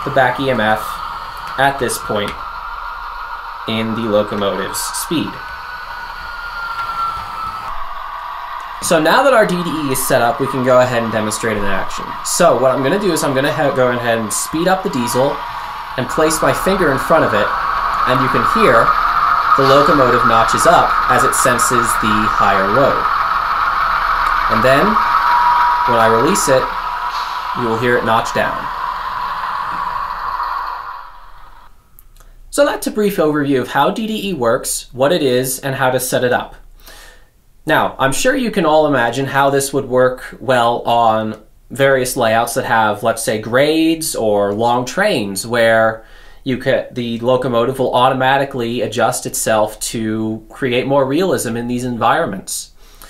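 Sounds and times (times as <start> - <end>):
diesel engine sound through speaker: 0.0 - 2.4, 8.8 - 23.3, 24.3 - 25.2, 25.8 - 28.7
high whine falling in pitch: 0.0 - 36.6.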